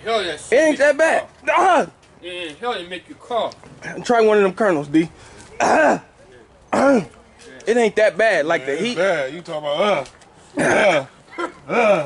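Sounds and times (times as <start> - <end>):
man coughing: 10.6 - 12.0.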